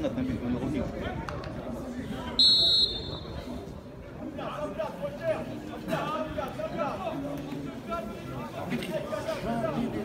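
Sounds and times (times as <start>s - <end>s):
people talking and calling out: 0.0s - 10.0s.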